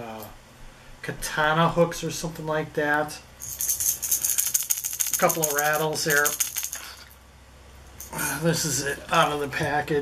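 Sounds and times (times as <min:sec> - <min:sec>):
fishing lure rattles clicking: 0:03.4 - 0:07.1.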